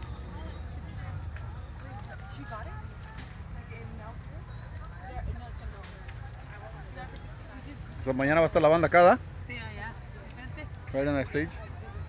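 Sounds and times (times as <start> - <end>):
distant people chattering: 0.0 - 12.0.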